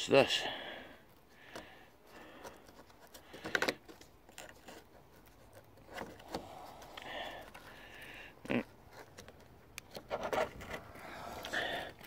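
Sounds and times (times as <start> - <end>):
rustling handling noise: 1.1 - 12.0.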